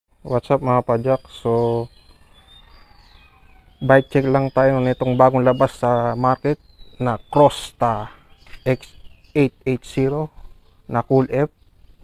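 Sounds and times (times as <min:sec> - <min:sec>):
man talking: 0:00.2 - 0:01.9, 0:03.8 - 0:10.3, 0:10.9 - 0:11.5
faint bird chirps: 0:00.2 - 0:12.0.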